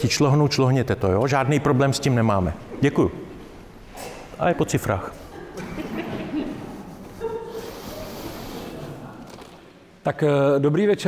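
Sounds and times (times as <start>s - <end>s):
hall room noise: 0.0s - 11.0s.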